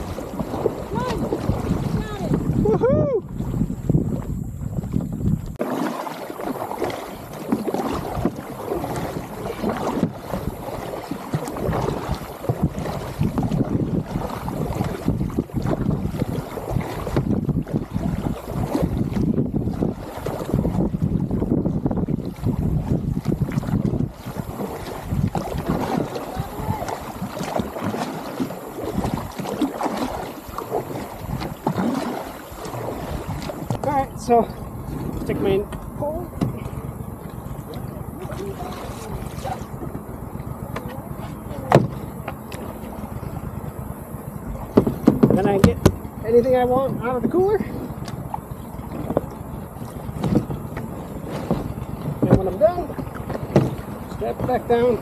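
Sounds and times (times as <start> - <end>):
wind buffeting microphone: 0.0 - 5.6, 6.4 - 55.0
kayak paddle strokes splashing: 0.0 - 55.0
water rushing and splashing: 0.0 - 55.0.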